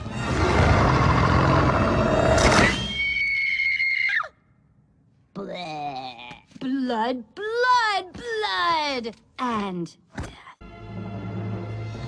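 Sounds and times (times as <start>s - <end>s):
snarling growl: 0.2s - 2.6s
young woman screaming: 2.9s - 4.4s.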